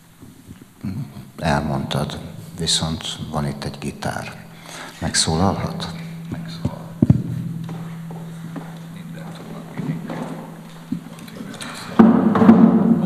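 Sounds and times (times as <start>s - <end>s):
low hum: 0.0s - 13.0s
guitar strings ringing: 1.4s - 13.0s
microphone knocking on table: 6.6s - 11.1s
knock on guitar body: 12.0s - 13.0s.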